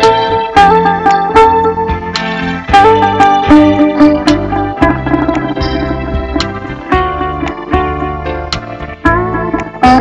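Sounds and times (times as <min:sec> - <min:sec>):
instrumental backing with bass: 0:00.0 - 0:10.0
plucked lute melody: 0:00.0 - 0:10.0.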